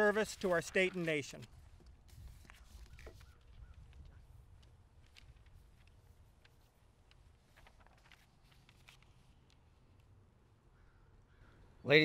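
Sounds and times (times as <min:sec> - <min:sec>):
faint bird calls: 0:02.6 - 0:04.4, 0:10.6 - 0:11.9.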